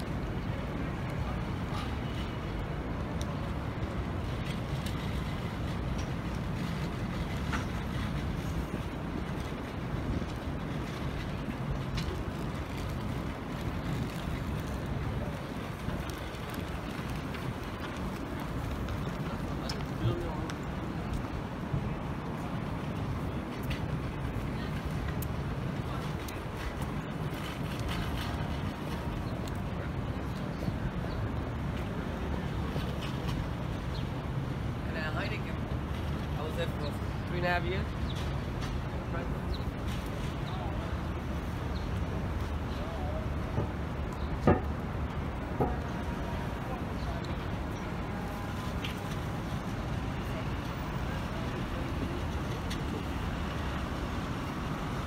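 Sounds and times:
passers-by talking: 0.0s - 55.0s
traffic rumble: 0.0s - 55.0s.

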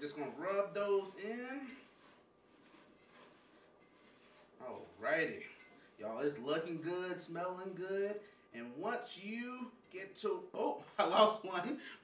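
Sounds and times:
hands rubbing potatoes in skillet: 0.0s - 7.4s.

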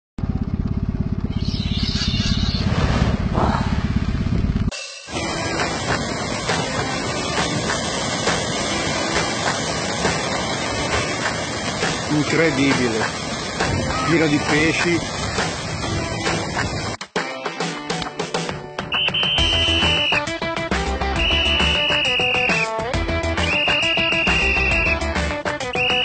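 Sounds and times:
fast-pulsing low rumble: 0.2s - 17.0s
surf and splashing water: 2.6s - 3.9s, 4.9s - 17.0s, 18.9s - 26.0s.

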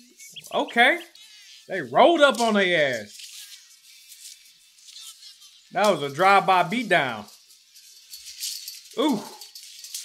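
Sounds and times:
hissy rattling scuffle noise: 0.3s - 10.0s
man saying ooh: 9.0s - 9.4s.

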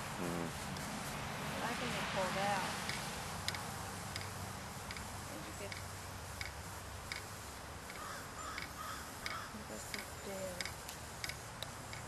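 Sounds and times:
impact sprinkler ticking: 1.6s - 12.0s
bird calling: 7.9s - 10.4s.

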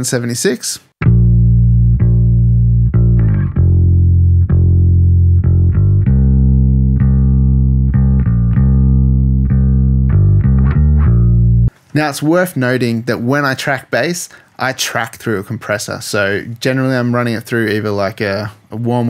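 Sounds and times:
electric bass guitar line: 1.0s - 11.7s.

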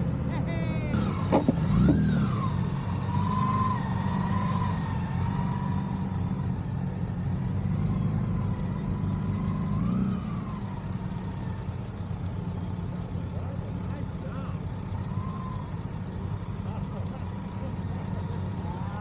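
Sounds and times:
motorcycle engine running: 0.0s - 19.0s.

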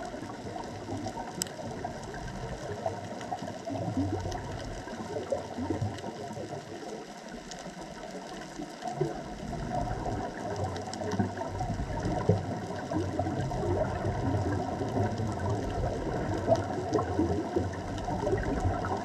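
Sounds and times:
faint scattered crackling: 0.0s - 19.0s
steady low underwater rumble: 0.0s - 19.0s.

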